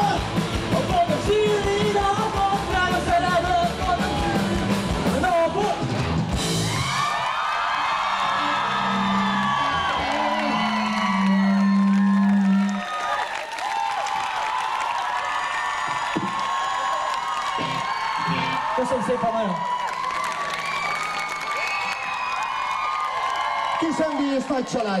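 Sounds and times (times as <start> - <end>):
live rock band playing: 0.0 - 7.0
audience cheering and whistling: 3.9 - 4.9, 6.3 - 24.8.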